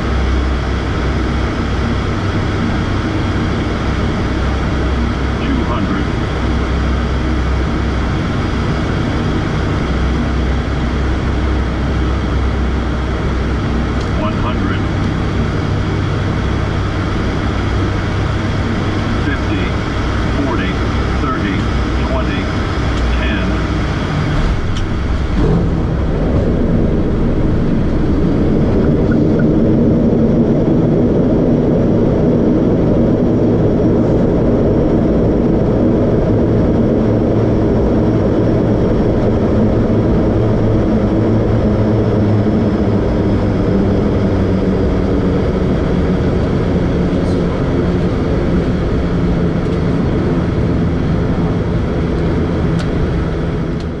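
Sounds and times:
turboprop engines droning: 0.0s - 54.0s.

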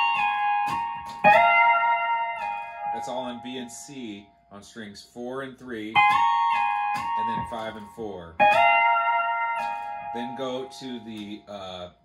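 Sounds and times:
pedal steel guitar chord: 0.0s - 3.8s, 6.0s - 11.3s.

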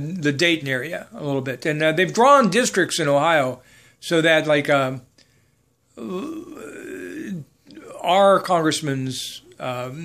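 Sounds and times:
man saying uhhh: 6.0s - 8.6s.

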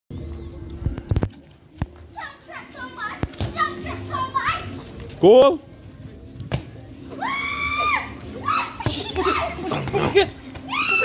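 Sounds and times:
children shouting: 7.2s - 10.0s, 10.6s - 11.0s.

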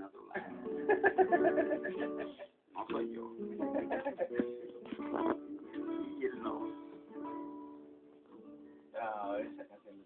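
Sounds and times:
acoustic guitar picking: 0.4s - 9.5s.

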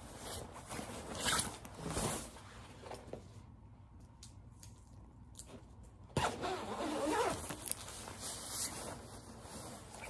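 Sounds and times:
padded jacket fabric rustling: 6.4s - 10.0s.

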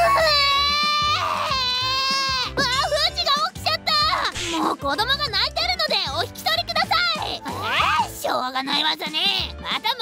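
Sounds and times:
baby crying: 0.0s - 2.6s
background music: 0.0s - 10.0s.

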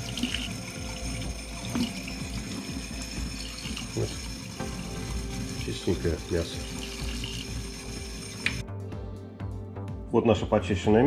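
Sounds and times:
faucet running into steel sink: 0.0s - 8.6s.

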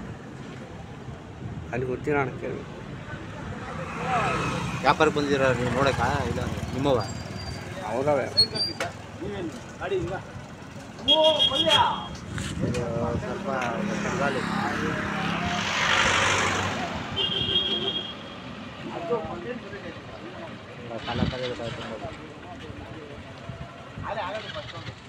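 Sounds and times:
street traffic: 0.0s - 25.0s
people talking: 1.7s - 10.3s, 11.0s - 15.9s, 18.8s - 25.0s
vehicle passing close by: 3.4s - 8.2s, 12.2s - 18.9s.

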